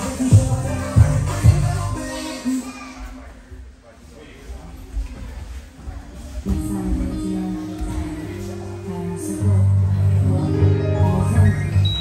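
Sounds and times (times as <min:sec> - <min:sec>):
music with held notes: 0:06.6 - 0:12.0.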